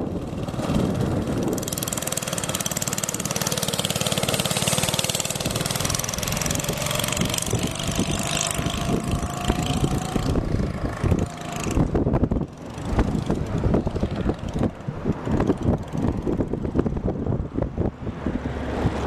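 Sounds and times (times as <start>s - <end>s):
go-kart engine running: 0.0s - 17.9s.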